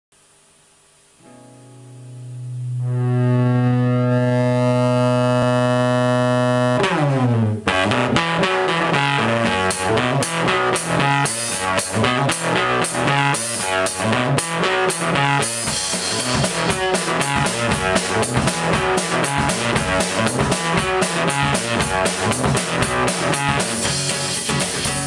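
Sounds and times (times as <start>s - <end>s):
distorted acoustic guitar riff: 1.1s - 25.0s
drum kit hits: 6.8s - 25.0s.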